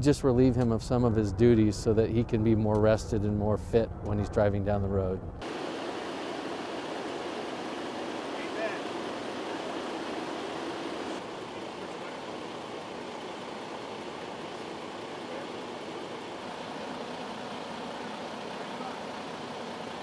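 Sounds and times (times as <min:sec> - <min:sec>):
truck road noise hiss: 0:05.4 - 0:20.0.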